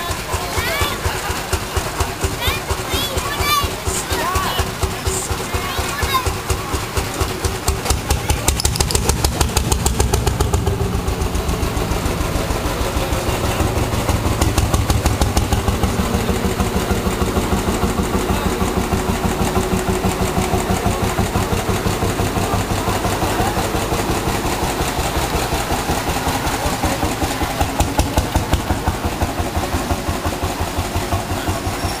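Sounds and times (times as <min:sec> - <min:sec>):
crowd chatter: 0:00.0 - 0:32.0
tractor engine chugging: 0:00.0 - 0:32.0.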